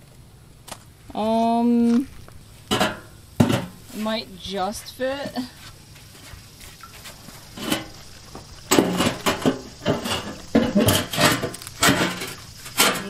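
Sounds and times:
cinder block scraping steel drum: 0:07.0 - 0:13.0.

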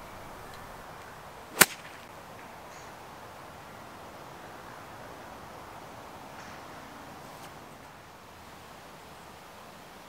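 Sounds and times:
golf club striking ball: 0:01.5 - 0:02.1.

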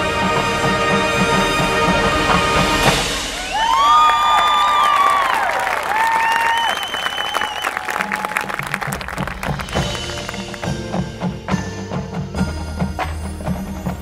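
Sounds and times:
marching band music: 0:00.0 - 0:03.8, 0:06.7 - 0:14.0
band percussion beat: 0:00.0 - 0:04.1, 0:07.6 - 0:14.0
audience applause: 0:03.4 - 0:10.7
sliding whistles: 0:03.5 - 0:08.4.

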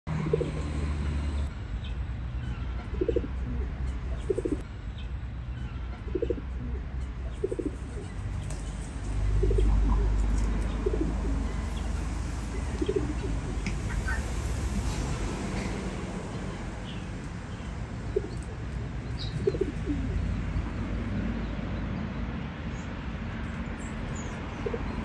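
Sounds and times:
pigeons cooing: 0:00.1 - 0:01.4, 0:02.8 - 0:04.6, 0:06.0 - 0:15.8, 0:18.0 - 0:20.4.

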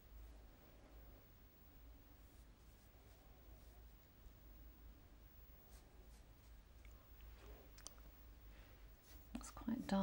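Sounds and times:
faint low hum: 0:00.0 - 0:10.0
woman speaking softly: 0:09.3 - 0:10.0.

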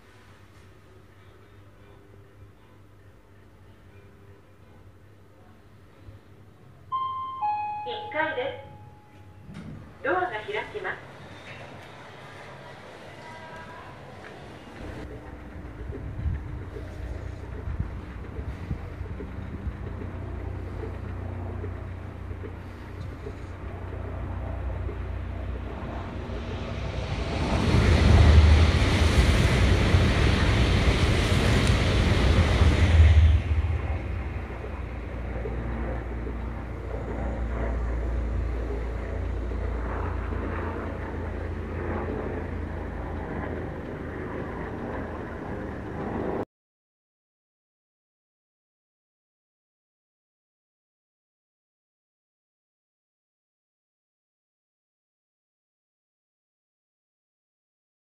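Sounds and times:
bullet train passing: 0:06.9 - 0:46.0
wind buffeting microphone: 0:14.8 - 0:46.4.

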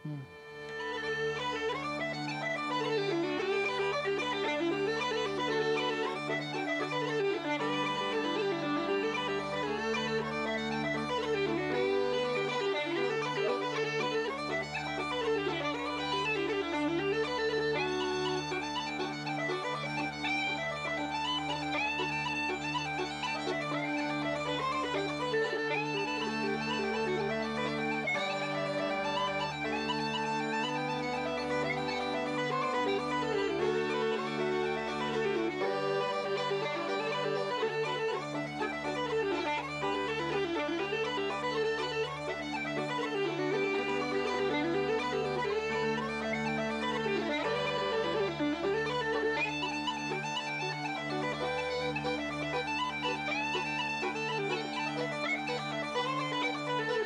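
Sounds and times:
uilleann pipes melody: 0:00.0 - 0:57.0
held pipe chords: 0:30.4 - 0:49.5.

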